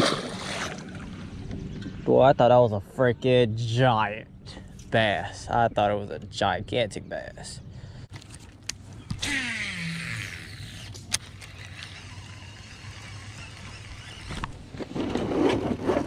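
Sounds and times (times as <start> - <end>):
reel handling noise: 8.1 - 15.8
fishing reel spool whirring: 9.1 - 14.8
sharp reel click: 9.2 - 14.5.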